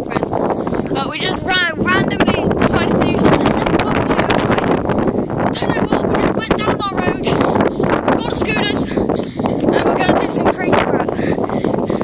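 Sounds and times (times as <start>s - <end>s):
wind buffeting microphone: 0.0s - 12.0s.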